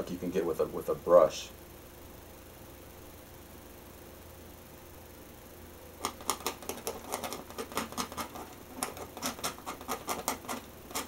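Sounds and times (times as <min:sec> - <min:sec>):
palette knife tapping canvas: 0:06.0 - 0:11.0.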